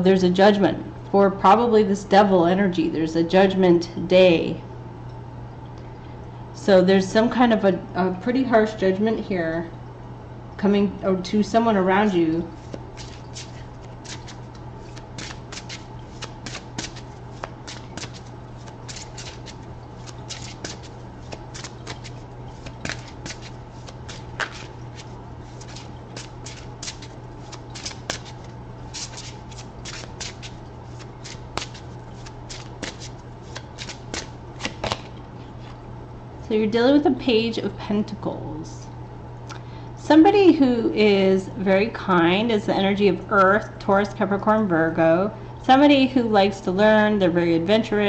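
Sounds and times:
steady low hum: 0.0 - 48.0
cards being shuffled: 12.6 - 35.8.

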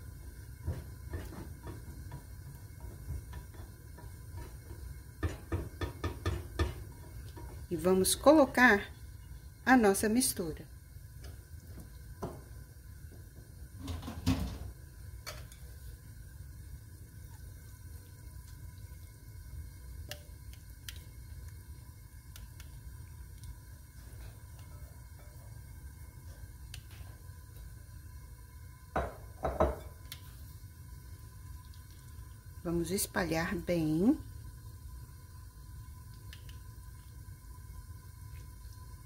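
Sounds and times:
bowl and spatula knocking on pan: 0.6 - 7.5, 28.9 - 30.0.

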